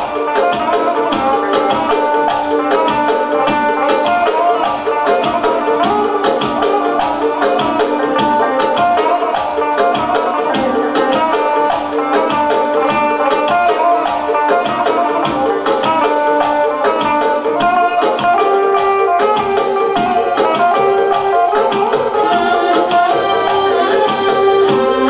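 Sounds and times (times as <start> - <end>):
electric guitar melodic lines: 0.0 - 25.0
keyboard accompaniment: 0.0 - 25.0
steady percussion beat: 0.0 - 25.0.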